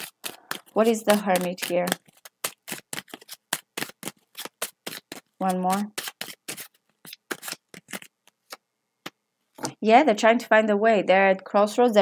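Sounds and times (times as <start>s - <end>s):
cards being shuffled: 0.0s - 9.8s.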